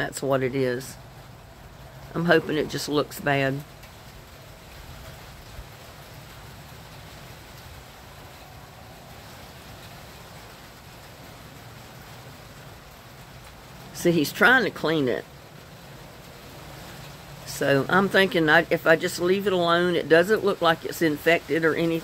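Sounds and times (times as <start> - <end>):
faint outdoor background noise: 0.0 - 22.0.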